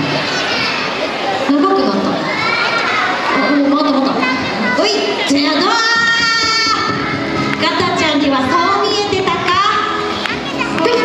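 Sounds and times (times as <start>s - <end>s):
children's voices: 0.0s - 11.0s
woman talking through microphone: 1.4s - 2.2s, 3.4s - 7.0s, 7.6s - 10.0s, 10.8s - 11.0s.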